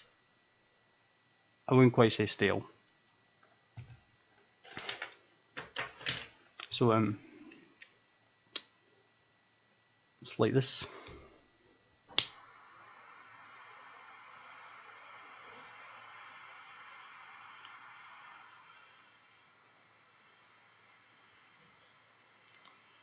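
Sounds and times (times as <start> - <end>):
flame hissing: 10.6 - 23.0
torch lighter click: 12.1 - 12.4.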